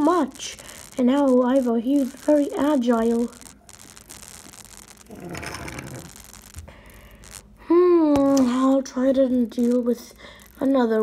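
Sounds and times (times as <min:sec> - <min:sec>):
child's voice: 0:00.0 - 0:03.4, 0:07.6 - 0:11.0
toy scraping across wooden floor: 0:05.1 - 0:06.1.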